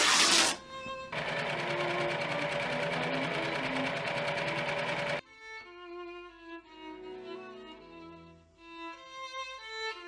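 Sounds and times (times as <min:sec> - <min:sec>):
electric sewing machine stitching: 0:00.0 - 0:05.2.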